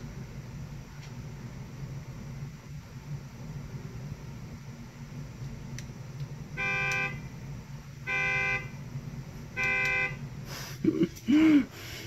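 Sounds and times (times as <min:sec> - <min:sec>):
car horn honking: 0:06.6 - 0:07.3, 0:08.0 - 0:08.8, 0:09.5 - 0:10.2.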